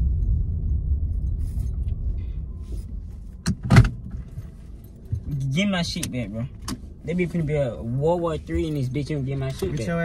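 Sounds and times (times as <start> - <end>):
car cabin engine and road rumble: 0.0 - 10.0.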